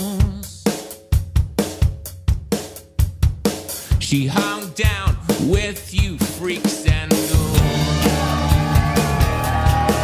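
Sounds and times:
drum kit beat: 0.0s - 10.0s
bass guitar: 3.2s - 10.0s.

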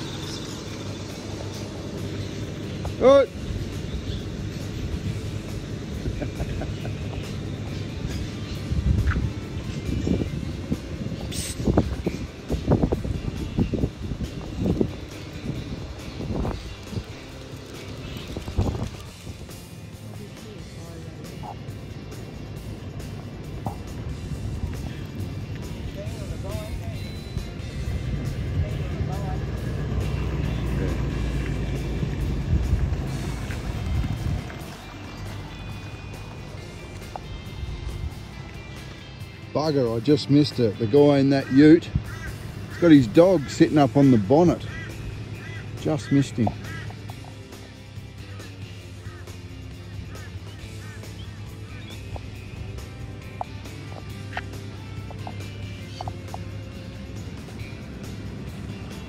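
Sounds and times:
background music: 0.0s - 59.0s.

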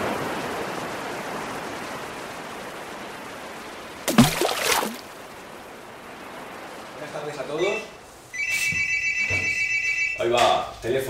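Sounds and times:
telephone ringing: 7.7s - 10.3s.

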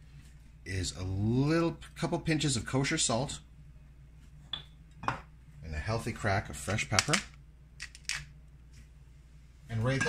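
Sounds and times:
pepper mill grinding: 7.8s - 8.3s.

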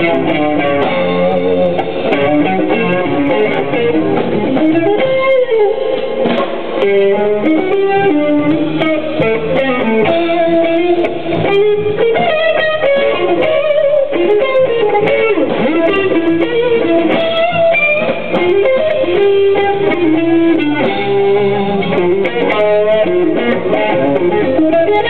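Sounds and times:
bass guitar: 0.0s - 25.0s
drums: 0.0s - 25.0s
electric guitar with bending notes: 0.0s - 25.0s.

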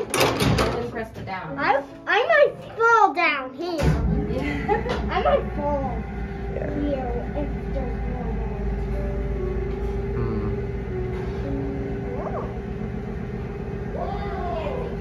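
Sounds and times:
elevator rumble and hum: 3.8s - 15.0s.

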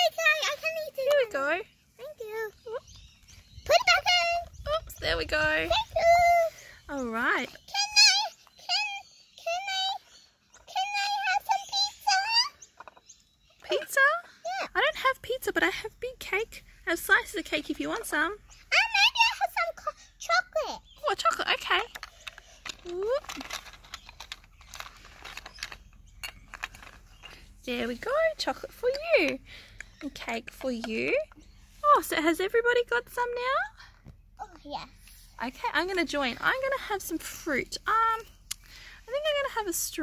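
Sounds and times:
high-pitched wordless voice sounds: 0.0s - 2.9s, 3.6s - 12.6s, 13.7s - 16.5s, 17.1s - 22.0s, 34.4s - 40.0s
plastic toy pieces clicking: 21.5s - 27.4s.

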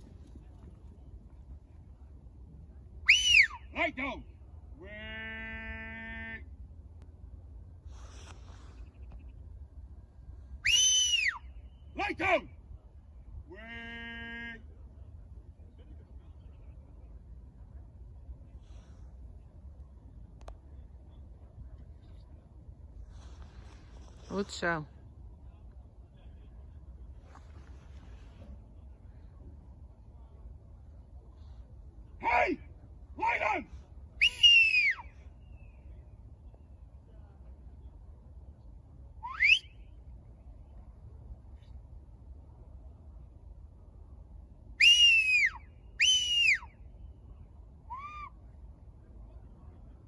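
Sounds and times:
whistle signal: 3.1s - 3.6s, 10.6s - 11.6s, 34.2s - 35.7s, 39.2s - 39.8s, 44.8s - 46.7s
person shouting: 32.2s - 32.6s, 33.2s - 33.8s.

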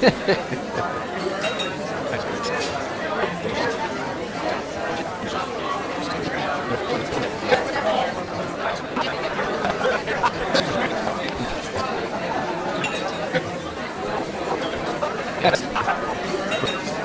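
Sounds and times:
chatter of diners' voices: 0.0s - 17.0s.

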